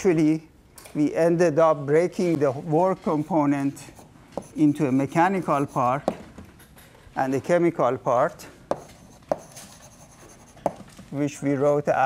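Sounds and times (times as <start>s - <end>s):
chalk scratching on blackboard: 3.8s - 6.2s, 8.7s - 10.9s
chalk tapping on blackboard: 3.9s - 6.2s, 8.7s - 10.9s.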